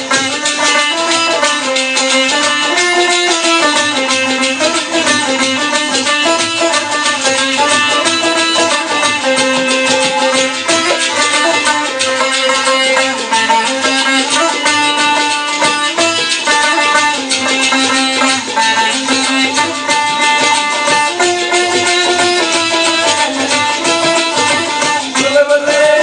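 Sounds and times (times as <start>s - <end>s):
sitars playing fast plucked melody: 0.0s - 26.0s.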